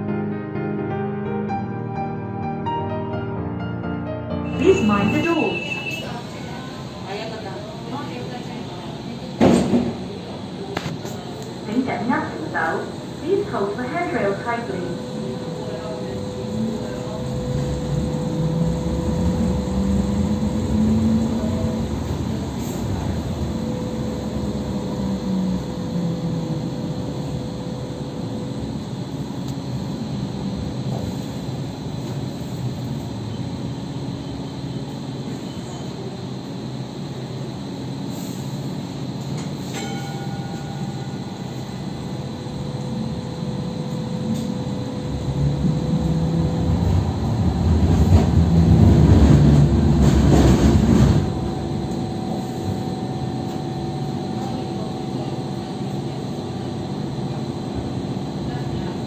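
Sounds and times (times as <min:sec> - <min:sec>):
train wheels rumbling on rails: 0:15.3 - 0:28.5, 0:43.8 - 0:56.0.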